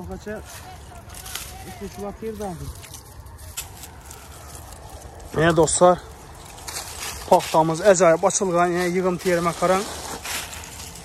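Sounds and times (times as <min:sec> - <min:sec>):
quiet voices talking: 0:00.0 - 0:11.0
steady low rumble: 0:00.0 - 0:11.0.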